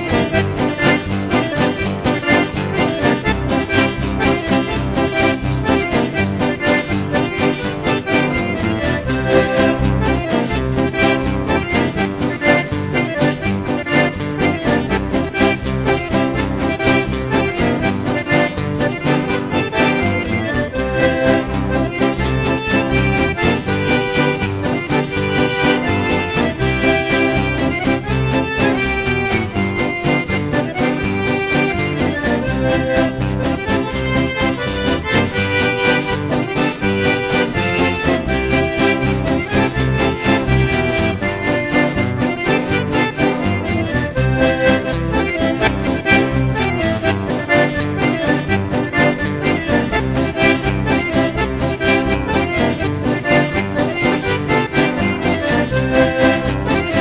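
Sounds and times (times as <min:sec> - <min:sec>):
accordion-led country waltz: 0:00.0 - 0:57.0.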